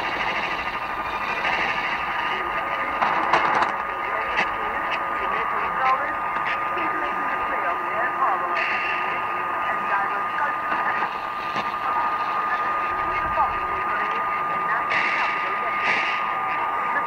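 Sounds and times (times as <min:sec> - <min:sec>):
radio static and hiss: 0:00.0 - 0:17.0
faint radio speech: 0:00.2 - 0:17.0
constant high whistle: 0:06.4 - 0:17.0.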